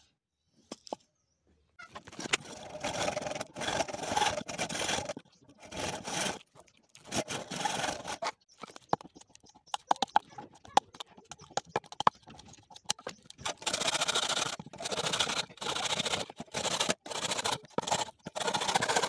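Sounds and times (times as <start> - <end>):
hand saw cutting bamboo: 2.2 - 6.4, 7.0 - 8.4, 13.4 - 19.0.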